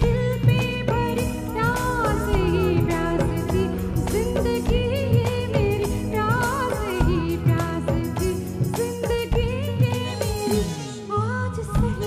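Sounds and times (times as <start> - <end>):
dholak beat: 0.0 - 11.0.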